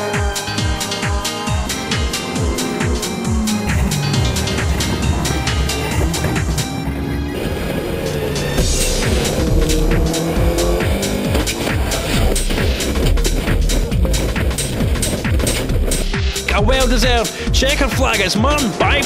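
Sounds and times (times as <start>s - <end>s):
background music with steady beat: 0.0s - 19.0s
race car engine running: 0.0s - 19.0s.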